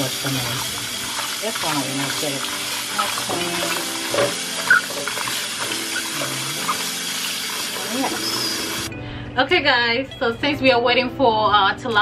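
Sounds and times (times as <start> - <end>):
tap water running into a bowl: 0.0 - 8.9.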